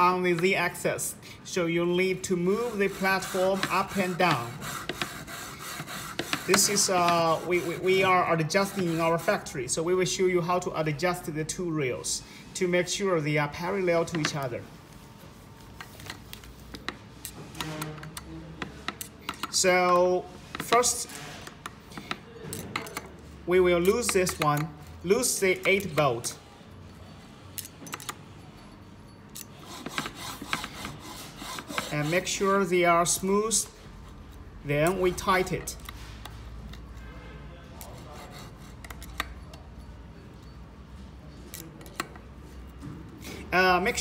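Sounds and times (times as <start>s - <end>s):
screwdriver scraping: 1.6s - 9.6s, 29.3s - 36.0s, 37.8s - 39.6s.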